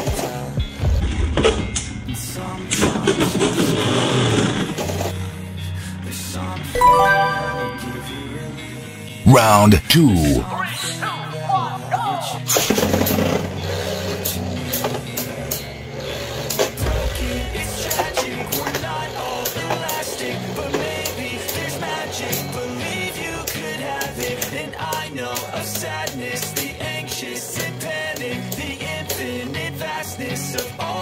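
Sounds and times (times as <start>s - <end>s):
background song: 6.7s - 10.5s.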